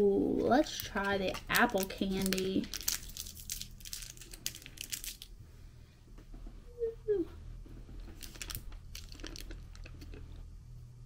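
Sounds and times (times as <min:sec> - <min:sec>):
plastic wrapper crinkling: 0:00.5 - 0:05.3, 0:08.0 - 0:10.2.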